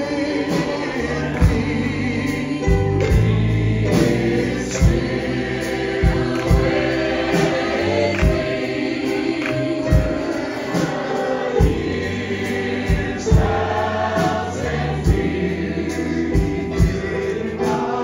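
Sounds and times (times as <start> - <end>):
drum kit steady beat: 0.0 - 18.0
gospel group singing in harmony: 0.0 - 18.0
piano: 0.0 - 18.0.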